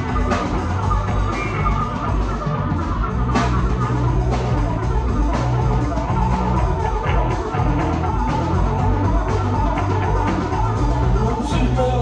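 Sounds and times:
electric guitar: 0:00.0 - 0:12.0
fretless bass long low notes: 0:00.0 - 0:12.0.

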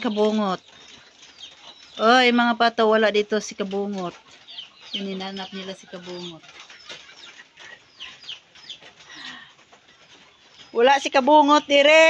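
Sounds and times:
ducks calling: 0:00.0 - 0:12.0.

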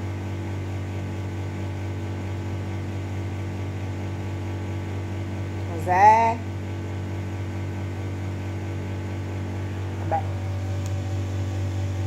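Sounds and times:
household appliance humming: 0:00.0 - 0:12.0.

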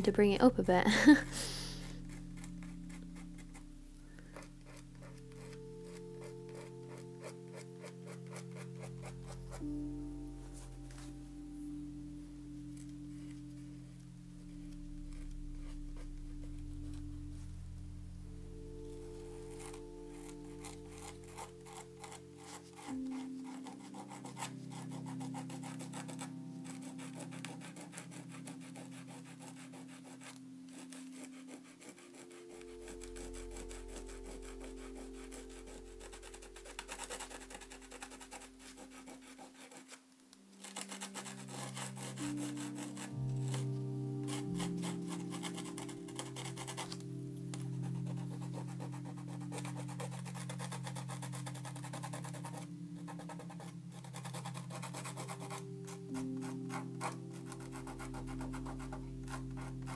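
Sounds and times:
soft background music chords: 0:00.0 - 0:59.9
rapid scratching on paper: 0:01.4 - 0:03.6, 0:04.3 - 0:09.9, 0:19.2 - 0:59.9.

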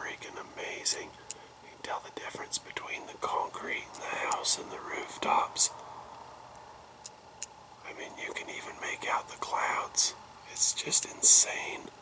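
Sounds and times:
person whispering: 0:00.0 - 0:05.8, 0:07.8 - 0:12.0
faint background hiss: 0:00.0 - 0:12.0
soft clicks: 0:06.1 - 0:07.6.

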